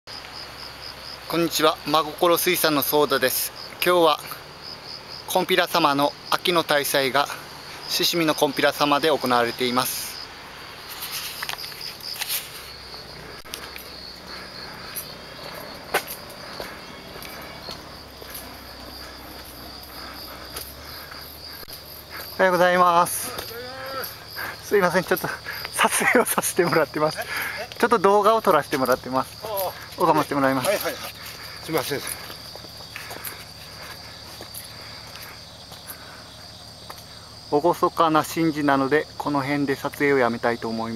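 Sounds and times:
insects trilling: 0.1 - 40.9
footsteps on gravel: 10.8 - 26.2, 28.7 - 37.1.

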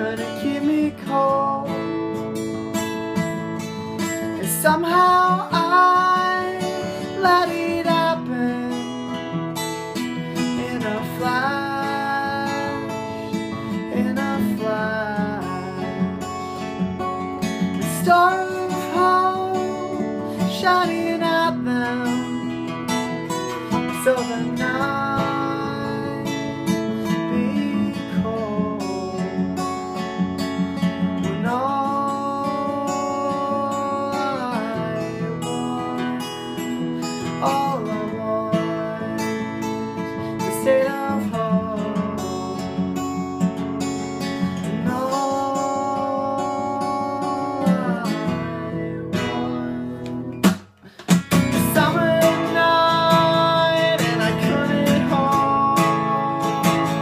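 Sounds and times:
man singing wordless notes: 0.0 - 2.0, 4.3 - 9.2, 10.4 - 16.0, 17.8 - 22.4, 23.6 - 29.4, 31.4 - 36.5, 37.2 - 39.7, 40.4 - 42.6, 44.8 - 50.3, 51.4 - 57.0
acoustic guitar strumming: 0.0 - 57.0.

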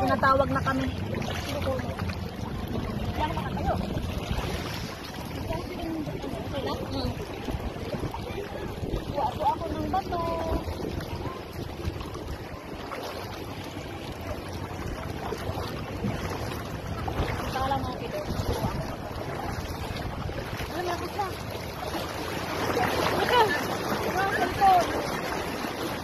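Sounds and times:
faint voices: 0.0 - 26.0
wind buffeting microphone: 0.0 - 26.0.

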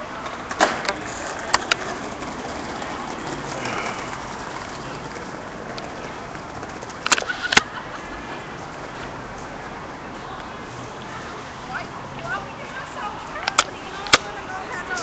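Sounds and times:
street background noise: 0.0 - 15.0
sharp clicks: 7.0 - 7.7, 13.4 - 14.3.

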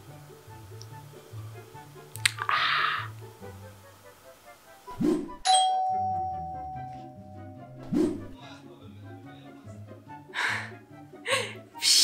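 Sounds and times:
short swish: 4.9 - 5.4, 7.8 - 8.4
bright bell-like ding: 5.5 - 7.8.

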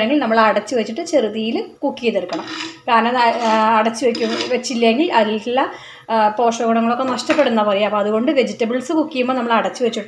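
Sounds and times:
woman talking: 0.0 - 10.0
ladle scraping clay pot: 2.2 - 4.9.

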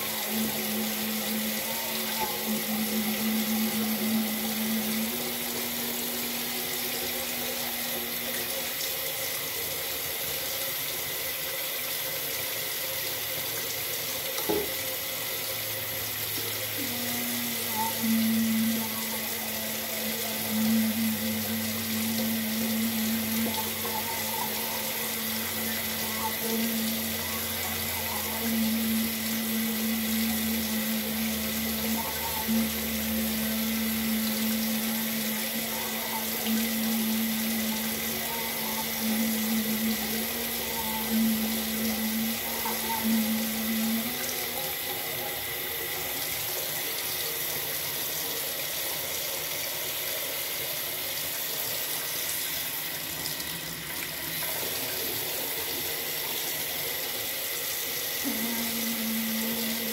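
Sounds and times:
low hum: 0.0 - 8.8, 16.6 - 46.5
tap water running into sink: 0.0 - 59.9.

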